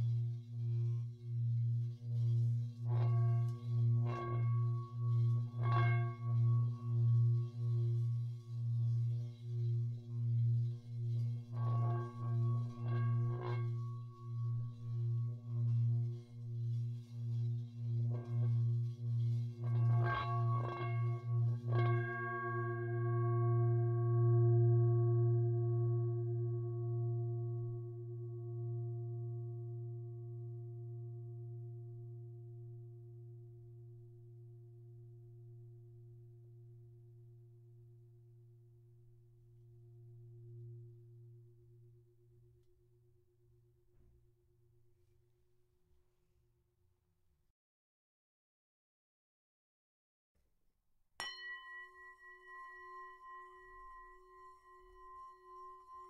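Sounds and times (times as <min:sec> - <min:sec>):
deep throbbing singing bowl tone: 0:00.0 - 0:42.4, 0:51.4 - 0:56.0
higher singing bowls ringing: 0:51.2 - 0:56.0.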